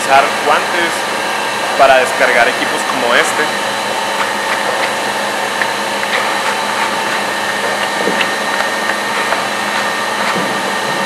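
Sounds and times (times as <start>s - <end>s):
machinery drone with steady tones: 0.0s - 11.0s.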